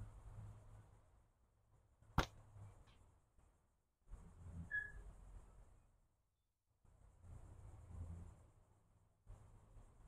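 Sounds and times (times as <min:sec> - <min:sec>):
high bird chirp: 0:04.7 - 0:05.0.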